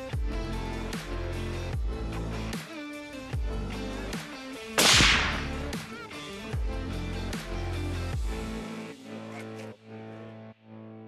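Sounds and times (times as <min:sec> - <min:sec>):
background music with bass: 0:00.0 - 0:11.0
suppressed rifle shot: 0:04.8 - 0:05.9.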